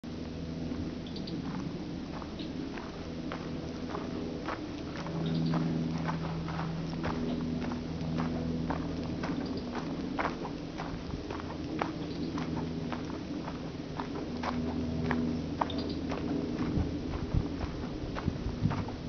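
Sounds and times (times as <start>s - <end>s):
steady low hum: 0.0s - 19.0s
footsteps on dry leaves: 0.4s - 19.0s.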